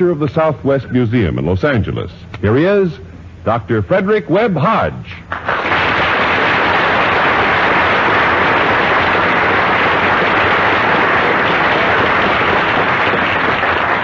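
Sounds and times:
audience applauding: 0:05.3 - 0:14.0.

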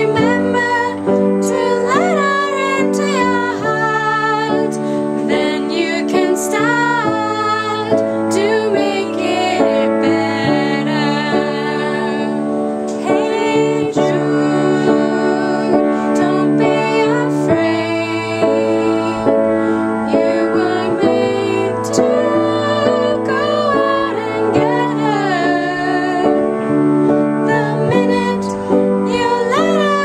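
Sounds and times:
women singing together: 0:00.0 - 0:30.0.

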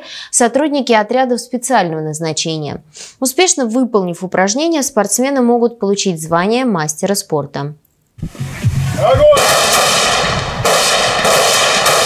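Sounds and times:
assault rifles firing: 0:09.3 - 0:12.0.

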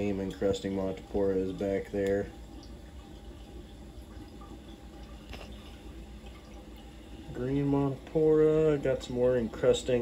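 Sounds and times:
water trickling in aquarium: 0:00.0 - 0:10.0.

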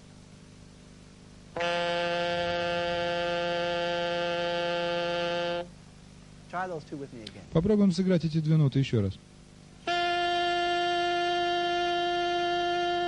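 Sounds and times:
saxophone holding low note: 0:01.6 - 0:05.7, 0:09.8 - 0:13.0.

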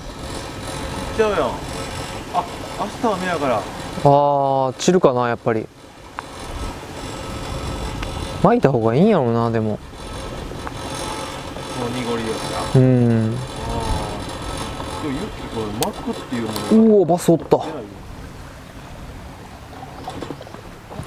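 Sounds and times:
steady background hum: 0:00.0 - 0:21.0
men talking: 0:01.1 - 0:01.7, 0:02.3 - 0:05.7, 0:08.4 - 0:09.8, 0:11.7 - 0:18.0.

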